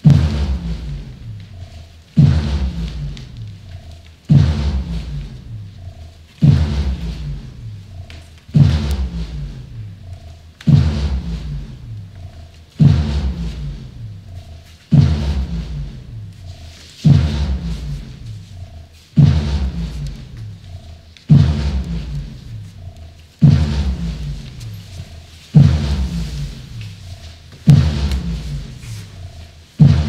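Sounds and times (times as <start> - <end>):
deep low-pitched hits: 0.0 - 30.0.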